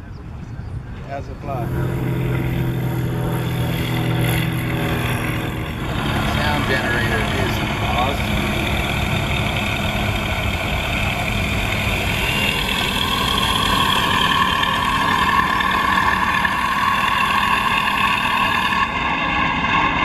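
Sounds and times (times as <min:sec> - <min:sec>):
low rumble: 0:00.8 - 0:20.0
electric motor and propeller whining: 0:01.2 - 0:20.0.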